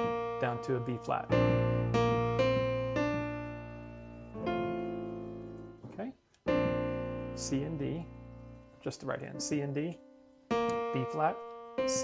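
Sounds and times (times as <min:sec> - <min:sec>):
piano chord ringing: 0:00.0 - 0:05.8, 0:06.5 - 0:12.0.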